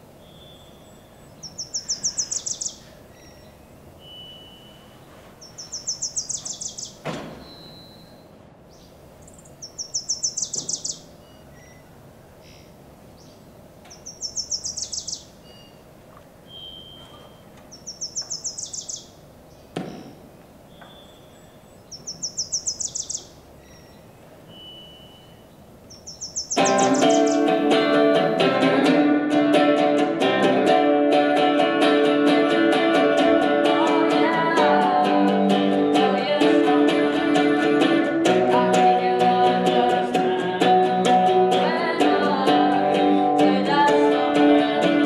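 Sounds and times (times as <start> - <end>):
bird trilling: 0.2 - 19.8, 20.6 - 28.5
knock: 7.0 - 7.4, 19.8 - 20.2
electric guitar strumming chords: 26.6 - 45.0.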